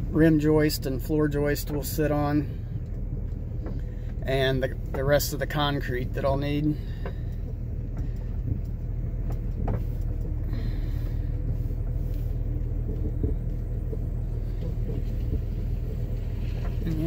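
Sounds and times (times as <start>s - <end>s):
van engine and road rumble: 0.0s - 17.0s.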